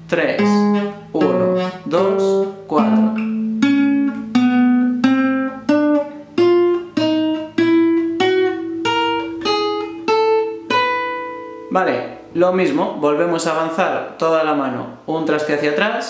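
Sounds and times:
classical guitar plucked notes: 0.0 - 12.8.

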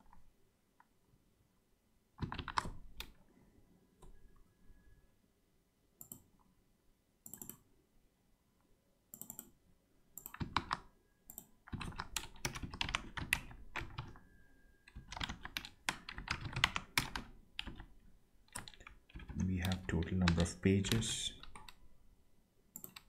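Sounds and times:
typing on computer keyboard: 2.2 - 3.2, 9.1 - 9.6, 10.2 - 14.2, 14.9 - 21.8, 22.8 - 23.0.

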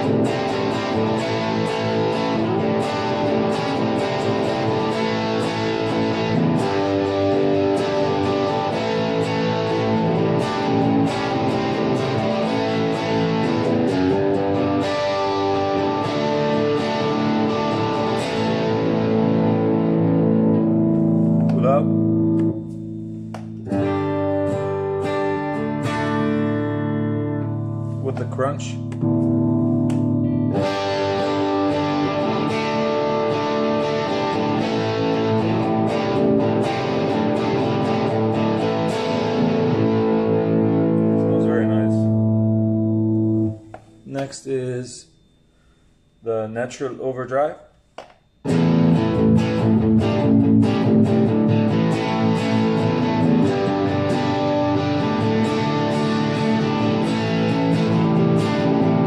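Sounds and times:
distorted electric guitar: 0.0 - 45.4, 48.0 - 59.0.

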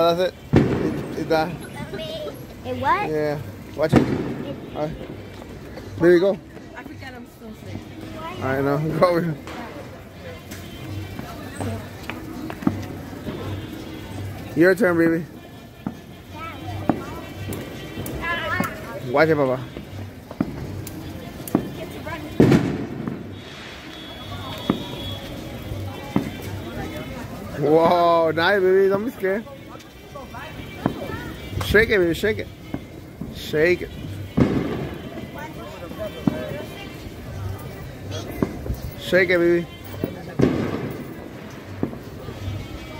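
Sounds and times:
firework crack: 0.0 - 5.9, 8.0 - 14.6, 15.8 - 42.9
faint background music: 0.0 - 42.9
faint distant voices: 0.0 - 42.9
firework bang: 0.5 - 1.2, 3.9 - 4.6, 22.4 - 25.2, 34.4 - 35.1, 40.3 - 41.2.

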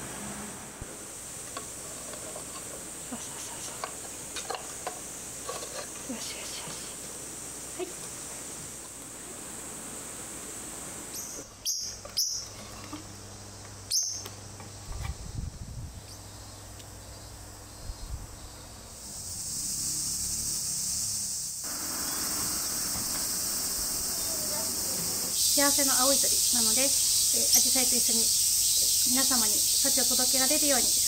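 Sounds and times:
high insect buzzing: 0.1 - 31.0.

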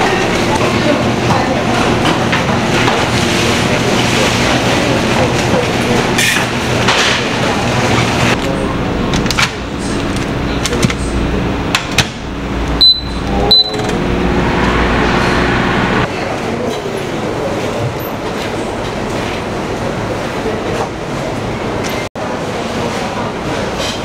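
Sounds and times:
microwave oven humming: 0.0 - 16.3
short high keypad beeps: 12.8 - 13.9.

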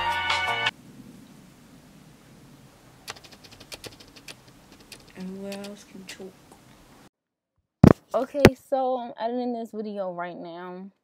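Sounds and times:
sharp clicks and crackles: 3.1 - 5.8.

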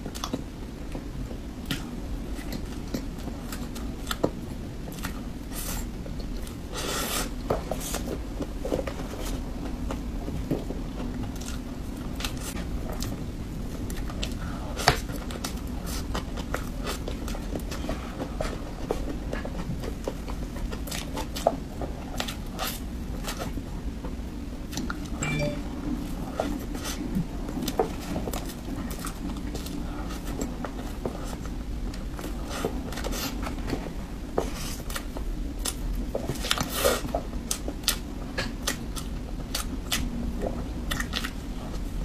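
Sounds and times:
soft chewing and mouth sounds: 0.0 - 25.2, 26.4 - 42.0
chewing mouth sounds: 36.4 - 42.0.

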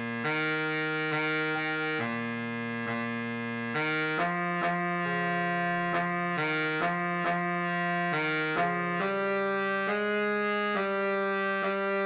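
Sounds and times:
baritone saxophone melody: 0.0 - 12.0.

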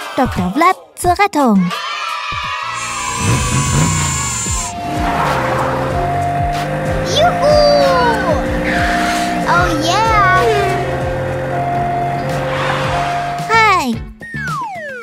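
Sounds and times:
background music: 0.0 - 15.0
two-tone ambulance siren: 2.7 - 13.5.

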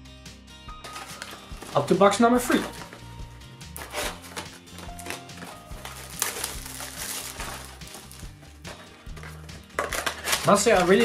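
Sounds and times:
background music low notes: 0.0 - 11.0
cardboard box clicks and rustling: 0.8 - 1.9, 3.8 - 11.0.

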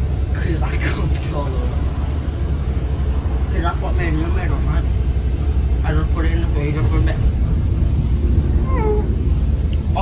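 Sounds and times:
bus rumbling: 0.0 - 10.0.

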